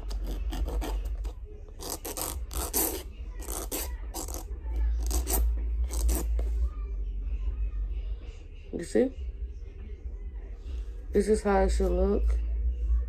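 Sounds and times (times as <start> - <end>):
nail file rasping on plastic: 0.0 - 4.4.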